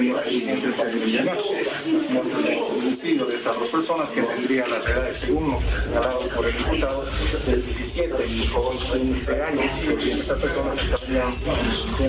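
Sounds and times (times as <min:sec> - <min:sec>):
muffled man speaking: 0:00.0 - 0:12.0
rubbing noise: 0:00.0 - 0:12.0.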